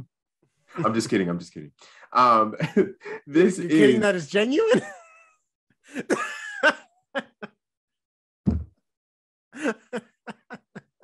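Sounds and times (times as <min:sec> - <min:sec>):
person laughing: 0:09.6 - 0:11.0.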